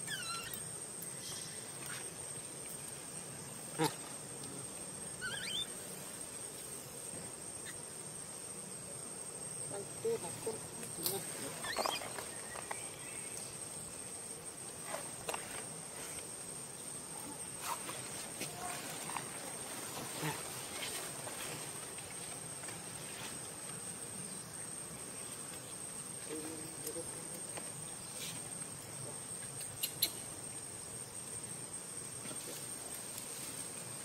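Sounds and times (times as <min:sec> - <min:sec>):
infant monkey squeaks: 0:00.0 - 0:00.6, 0:05.2 - 0:05.7, 0:11.6 - 0:12.2
crickets chirring: 0:00.0 - 0:34.0
rustles in dry leaves: 0:17.5 - 0:23.8, 0:32.3 - 0:34.0.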